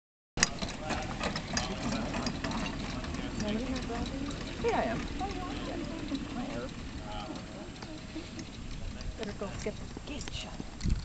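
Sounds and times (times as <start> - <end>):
carriage wheels and harness rattling: 0.4 - 11.0
pony hoofbeats trotting: 0.4 - 11.0.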